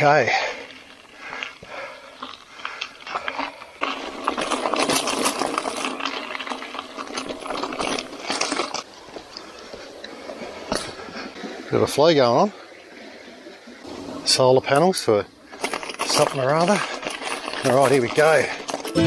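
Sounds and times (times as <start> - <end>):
bike rattling: 0.0 - 11.3, 15.4 - 19.0
bike tyres crunching on gravel: 0.0 - 11.5, 13.8 - 19.0.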